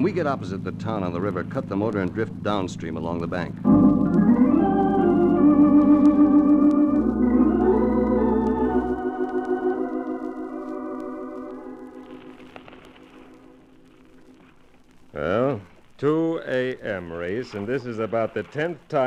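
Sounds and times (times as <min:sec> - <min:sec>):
organ chords with vibrato: 0:03.6 - 0:13.7.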